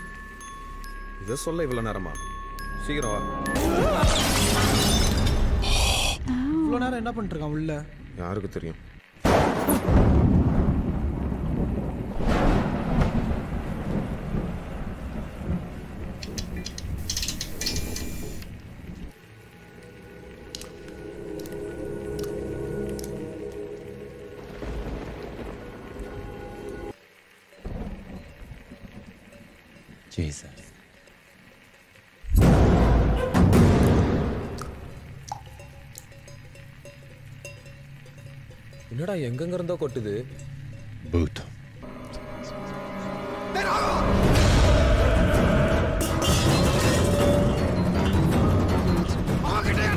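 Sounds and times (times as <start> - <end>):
sharp drip-like ticks: 0.0 - 3.6, 16.0 - 24.2, 26.0 - 32.3, 33.8 - 41.8
crackling burst: 9.1 - 29.4
low drone: 18.8 - 26.9, 41.7 - 49.1
deep rumbling boom: 32.3 - 34.5
steady music drone: 41.8 - 49.3.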